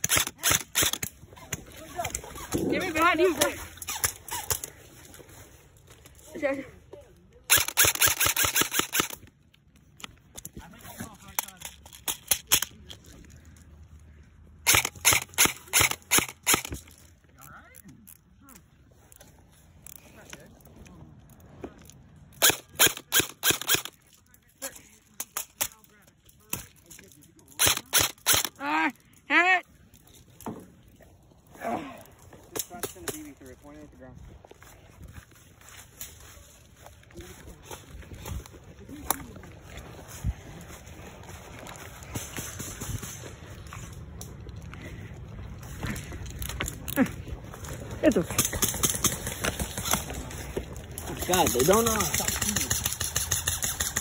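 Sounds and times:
airsoft rifle firing rapid bursts: 7.5 - 9.2, 14.7 - 16.7, 22.4 - 23.9, 51.4 - 54.0
person shouting: 28.6 - 29.6.

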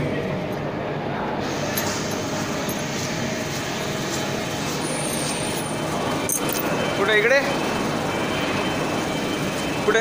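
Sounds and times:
factory machinery humming: 0.0 - 10.0.

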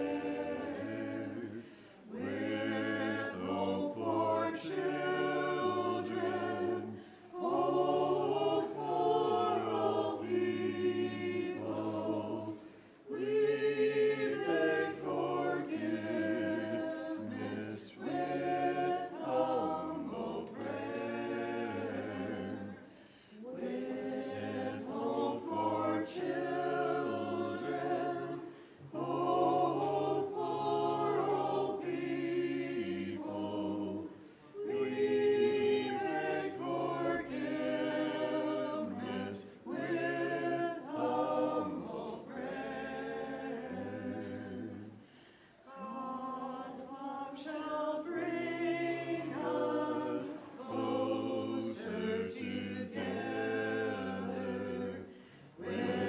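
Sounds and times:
voices singing chant a cappella: 0.0 - 56.0
singers breathing: 1.5 - 2.1, 6.9 - 7.3, 12.6 - 13.1, 22.8 - 23.4, 28.4 - 28.9, 45.0 - 45.7, 55.1 - 55.6.

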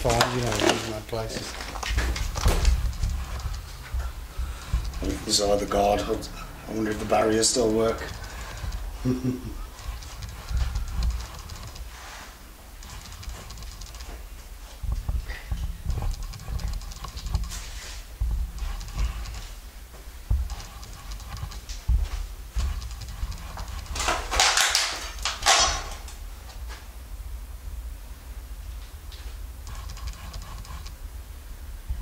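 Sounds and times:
footsteps: 0.0 - 26.9
dull low thumps: 1.9 - 6.7, 8.1 - 11.8, 12.8 - 24.0.

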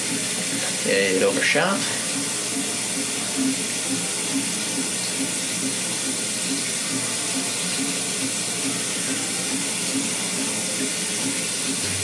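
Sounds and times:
shower water running: 0.0 - 12.0.

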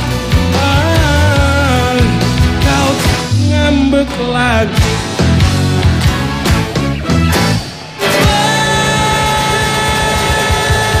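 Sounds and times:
distorted guitar chord: 4.8 - 11.0.

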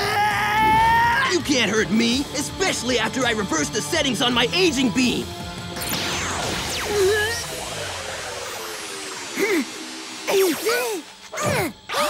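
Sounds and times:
action music: 0.0 - 11.3.

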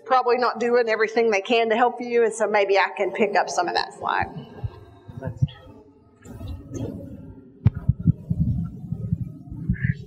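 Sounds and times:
microphone handling thumps: 4.1 - 10.0.

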